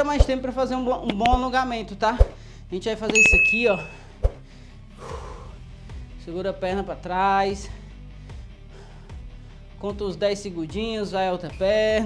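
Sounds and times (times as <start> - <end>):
quiet background music: 0.0 - 12.0
soft breath: 3.9 - 6.1.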